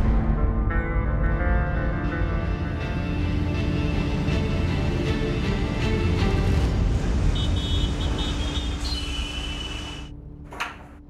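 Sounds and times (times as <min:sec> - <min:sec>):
traffic engines rumbling: 0:02.7 - 0:11.0.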